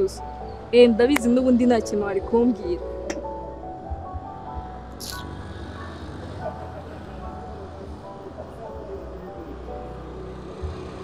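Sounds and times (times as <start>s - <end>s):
city traffic rumble: 0.0s - 11.0s
soft background music: 0.0s - 11.0s.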